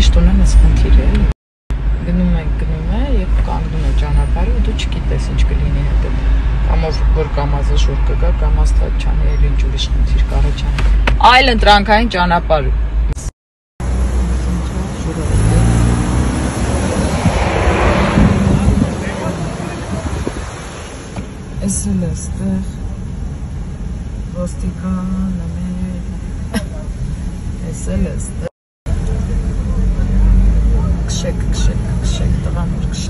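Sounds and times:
road traffic noise: 0.0 - 33.0
vehicle engine rumbling: 0.0 - 33.0.

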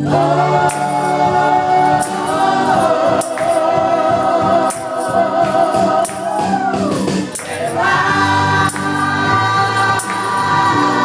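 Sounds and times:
instrumental accompaniment: 0.0 - 11.0
women singing in harmony: 0.0 - 11.0.

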